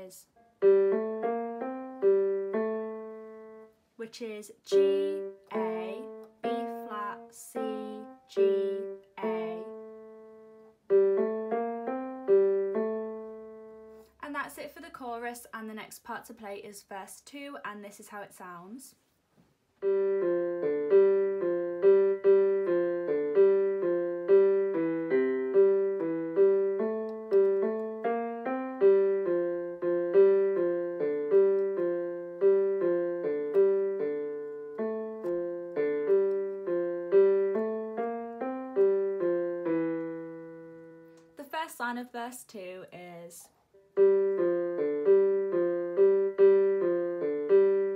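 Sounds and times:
keyboard piano pop melody: 0:00.0 - 0:03.7, 0:04.7 - 0:14.1, 0:19.8 - 0:41.4, 0:43.9 - 0:47.9.

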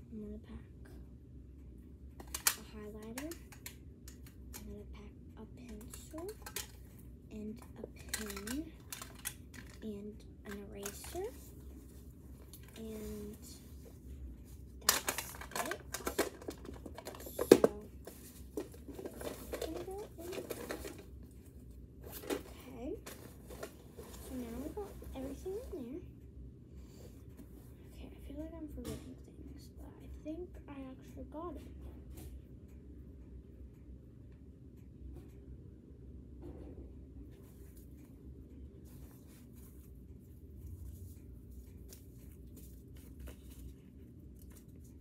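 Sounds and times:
rustling and crinkling while packing: 0:05.6 - 0:26.0, 0:38.8 - 0:45.0.

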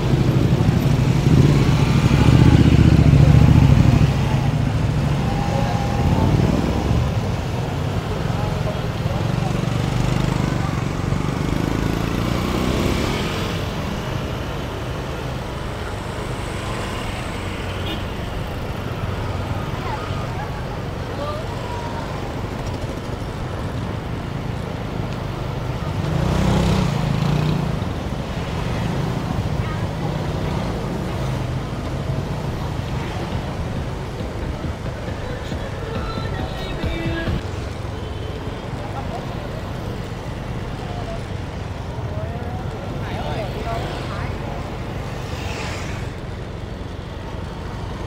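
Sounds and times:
people's voices: 0:00.0 - 0:47.7
motor scooters passing: 0:00.0 - 0:48.0.

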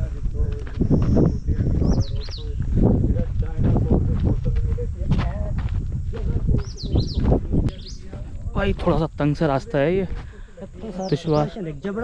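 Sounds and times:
steady low rumble: 0:00.0 - 0:10.9
footsteps on stony dirt path: 0:00.0 - 0:12.0
man speaking: 0:07.7 - 0:12.0.

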